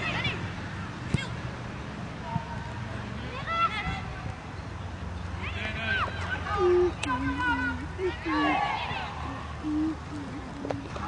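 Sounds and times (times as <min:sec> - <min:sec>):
high-pitched shout: 0:05.8 - 0:09.5.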